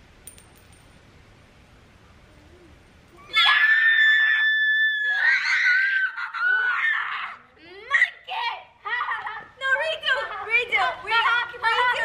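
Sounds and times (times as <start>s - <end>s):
girl screaming in excitement: 3.2s - 8.1s.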